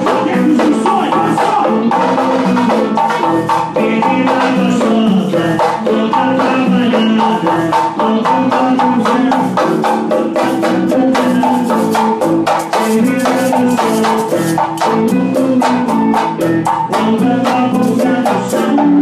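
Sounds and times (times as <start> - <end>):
drum kit: 0.0 - 19.0
electric guitar: 0.0 - 19.0
live band music: 0.0 - 19.0
percussion rhythm: 0.0 - 19.0.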